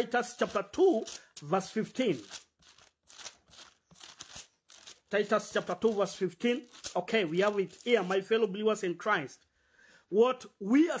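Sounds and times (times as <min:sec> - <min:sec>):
pages turning: 0:00.0 - 0:08.8.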